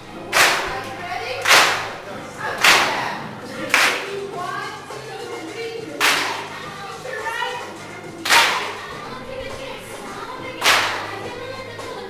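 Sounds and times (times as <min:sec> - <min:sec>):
voices singing: 0:00.0 - 0:12.0
group clapping in unison: 0:00.3 - 0:04.2, 0:05.9 - 0:06.6, 0:08.2 - 0:09.0, 0:10.6 - 0:12.0.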